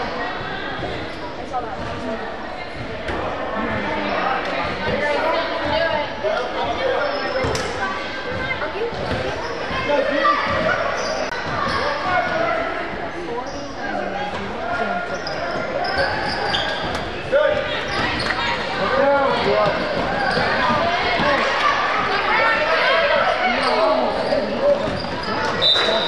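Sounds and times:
chatter of people: 0.0 - 26.0.

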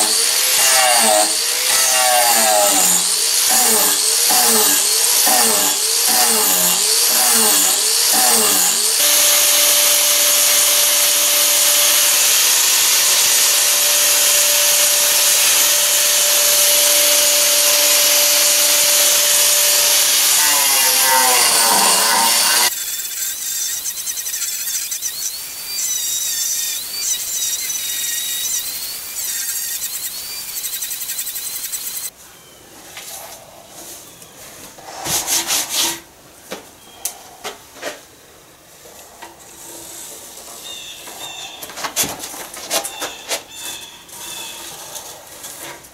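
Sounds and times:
angle grinder sanding wood: 0.0 - 32.1.

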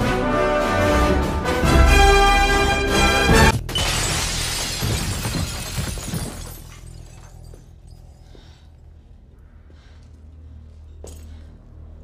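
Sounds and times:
orchestral music: 0.0 - 3.6
glass shattering: 3.6 - 8.1.

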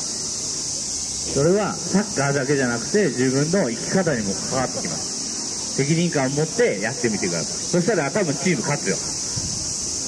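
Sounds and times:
cicadas droning: 0.0 - 10.0
man talking: 1.3 - 5.1, 5.8 - 9.1.

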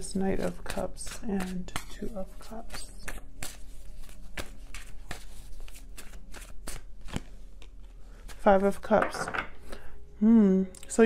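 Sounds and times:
cards being shuffled: 0.0 - 8.7.

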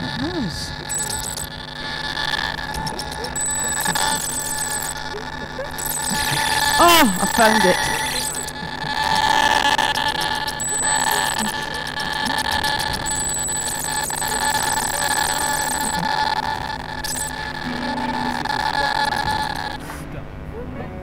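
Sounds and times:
held high buzzing tone: 0.0 - 20.5.

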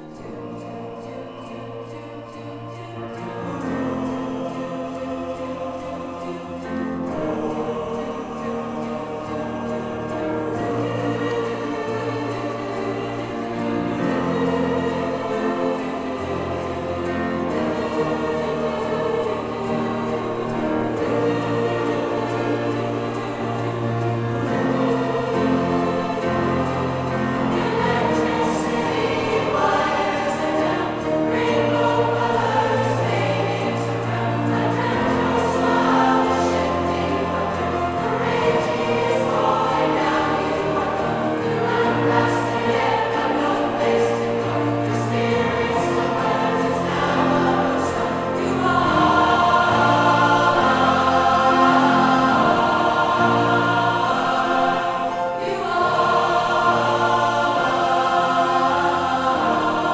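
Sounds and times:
large choir singing in harmony: 0.0 - 59.9.

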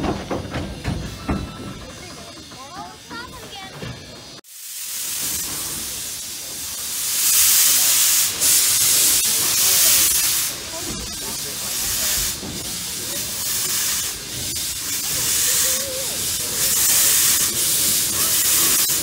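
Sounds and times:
steam locomotive venting steam: 0.0 - 19.0.

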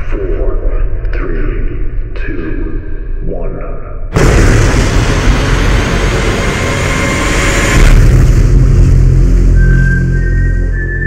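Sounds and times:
deep rumble: 0.0 - 11.0
dense rushing roar: 4.2 - 10.4
low sustained drone: 4.2 - 11.0.

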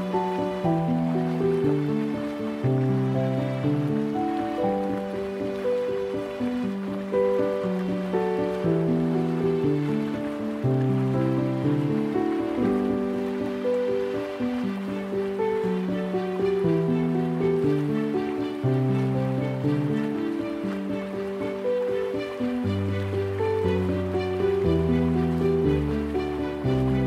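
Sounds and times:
flowing river water: 0.0 - 27.0
gentle solo piano: 0.0 - 27.0.

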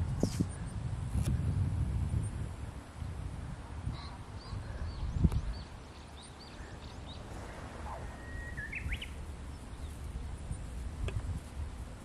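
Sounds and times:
bird chirps: 4.0 - 10.7
whistled bird call: 7.8 - 9.2.

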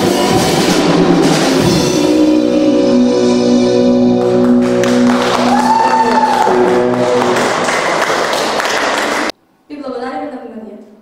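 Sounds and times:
live band final chord: 0.0 - 9.3
applause: 4.2 - 9.3.

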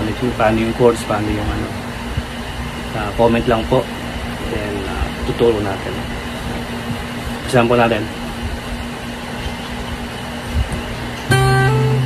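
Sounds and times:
background hum: 0.0 - 12.0
acoustic guitar notes plucked: 11.3 - 12.0.

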